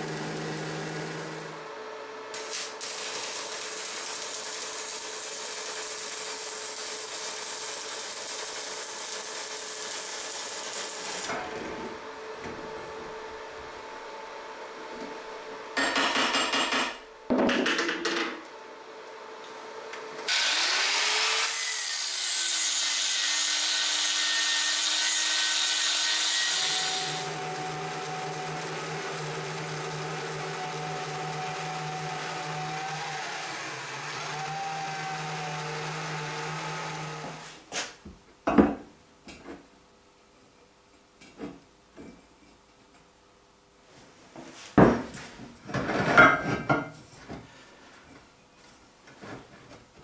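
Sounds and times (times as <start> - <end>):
bandsaw cutting steel: 0.0 - 1.6, 2.3 - 11.4, 20.3 - 37.6.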